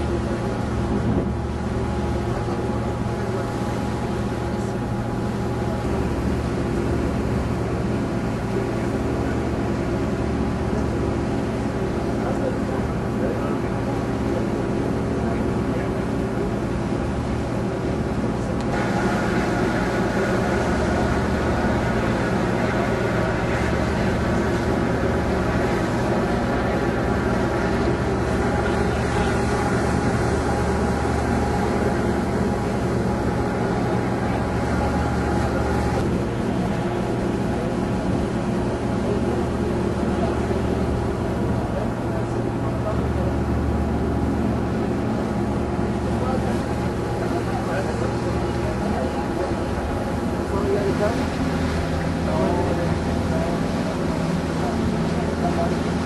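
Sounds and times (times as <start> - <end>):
boat engine droning: 0.0 - 56.0.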